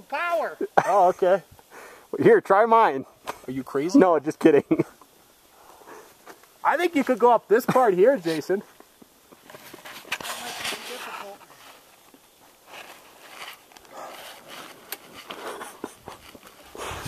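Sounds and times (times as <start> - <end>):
uneven rustling: 8.1 - 17.0.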